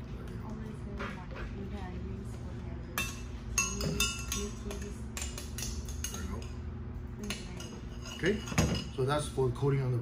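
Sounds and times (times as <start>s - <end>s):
metal spoon clinking on cup: 3.0s - 6.6s, 7.2s - 9.1s.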